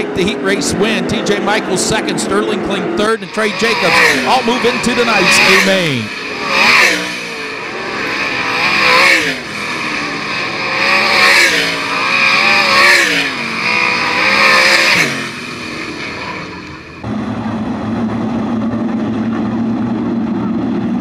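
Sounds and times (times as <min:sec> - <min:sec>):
low drone of race cars rolling: 0:00.0 - 0:21.0
race car engines passing at speed: 0:00.0 - 0:21.0.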